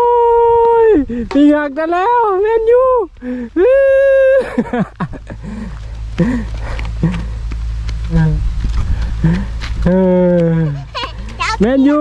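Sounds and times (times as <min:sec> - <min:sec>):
wind buffeting microphone: 0:07.8 - 0:12.0.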